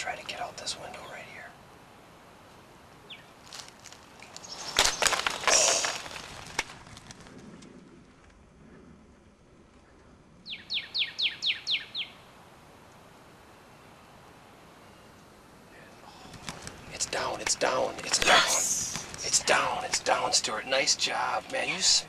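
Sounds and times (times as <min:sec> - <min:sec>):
rustling handling noise: 0:03.4 - 0:07.4.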